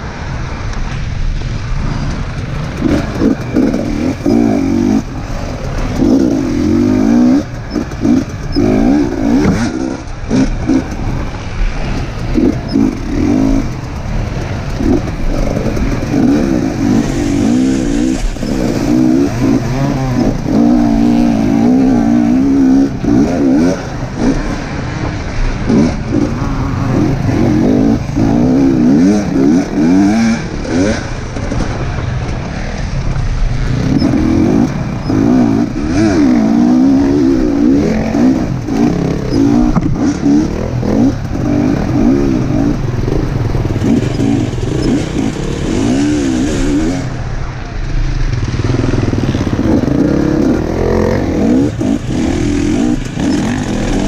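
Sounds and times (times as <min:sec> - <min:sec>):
dirt bike engine revving: 0:01.8 - 0:47.5, 0:48.1 - 0:54.0.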